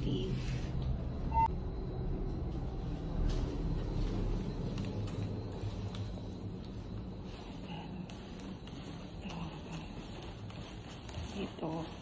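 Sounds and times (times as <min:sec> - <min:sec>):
short electronic beep: 0:01.2 - 0:01.6.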